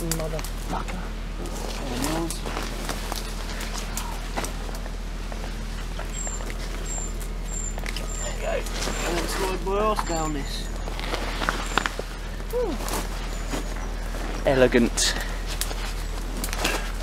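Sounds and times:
brambles rustling and snapping: 0.0 - 14.4, 15.1 - 17.0.

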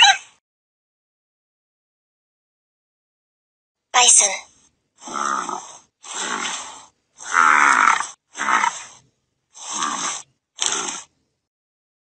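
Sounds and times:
bison grunting: 5.0 - 9.0, 9.6 - 11.2.

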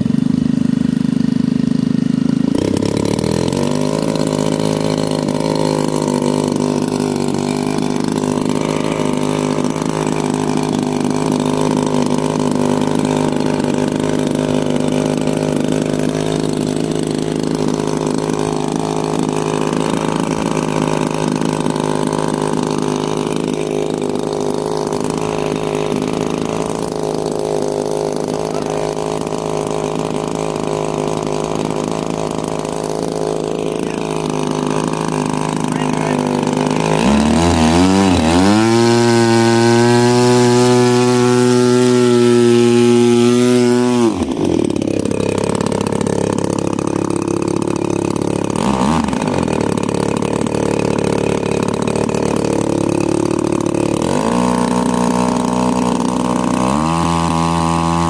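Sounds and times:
model plane engine running: 0.0 - 58.0.

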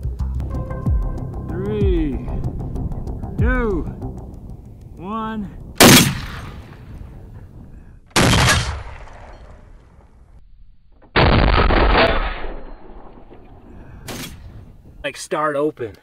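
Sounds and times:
loud rifle shots: 5.8 - 7.0, 8.1 - 9.6, 11.2 - 13.2.

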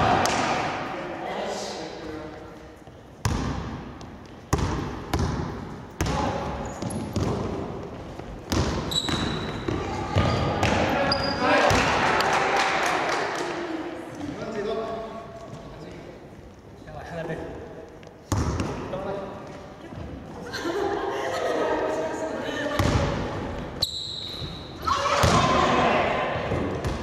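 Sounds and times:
basketball bouncing on hardwood: 8.5 - 10.8.

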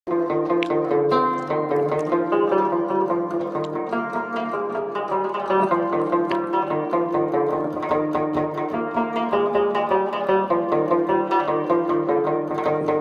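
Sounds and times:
plucked lute melody: 0.1 - 13.0.

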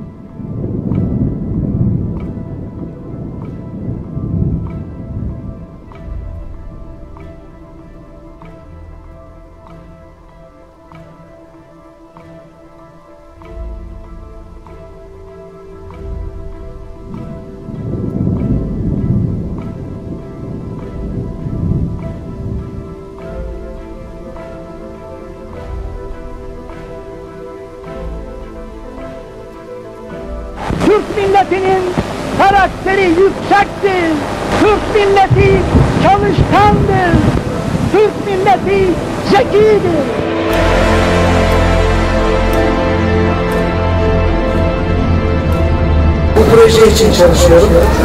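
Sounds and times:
thunder rumbling: 0.0 - 10.6, 13.8 - 48.0
background music: 0.0 - 48.0
steady rain: 0.0 - 48.0.

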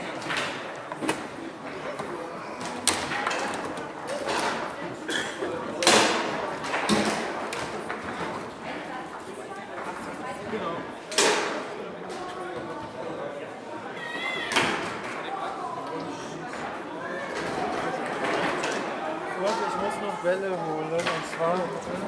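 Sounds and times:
background voices in hall: 0.0 - 22.0.

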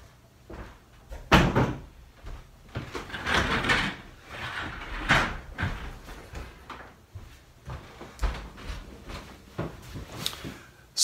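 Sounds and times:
furniture scraping and rustling: 2.3 - 10.6.

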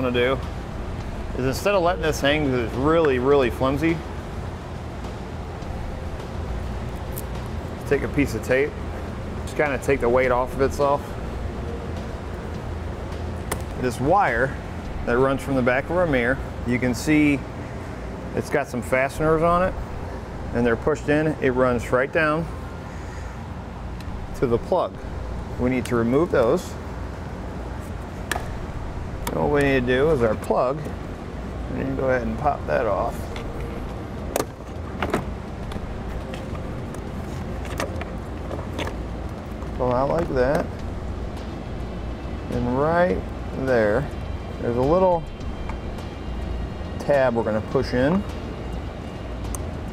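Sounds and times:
low room hum: 0.0 - 49.9.

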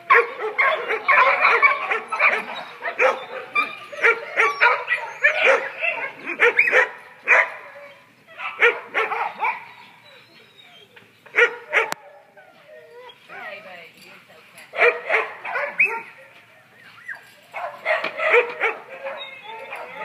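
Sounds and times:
dogs barking: 0.0 - 10.0, 11.3 - 12.2, 14.7 - 16.7, 17.5 - 20.0.

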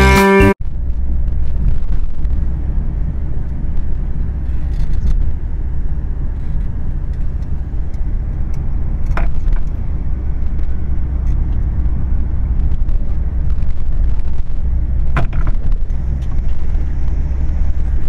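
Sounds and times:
road and engine rumble inside car: 0.6 - 18.0.

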